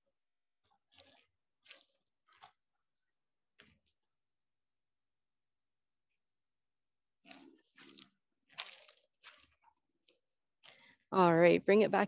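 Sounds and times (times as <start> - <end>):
footsteps on dry leaves: 8.6 - 9.6.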